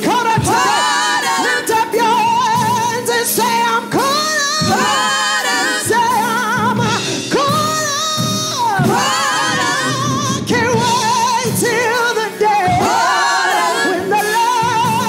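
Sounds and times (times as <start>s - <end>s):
backing singers: 0.0s - 15.0s
band playing: 0.0s - 15.0s
woman singing gospel with vibrato: 0.0s - 15.0s.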